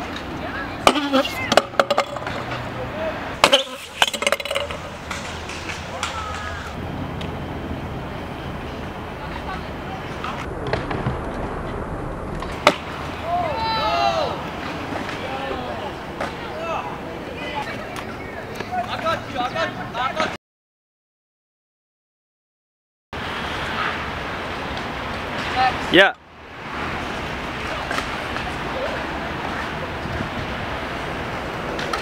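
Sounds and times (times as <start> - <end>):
voices calling out: 0.0 - 10.5, 12.7 - 20.4, 27.3 - 30.8
scooter wheels rolling on concrete: 0.0 - 20.4, 23.2 - 32.0
sharp scooter deck clacks: 0.1 - 2.6, 3.4 - 6.8, 31.7 - 32.0.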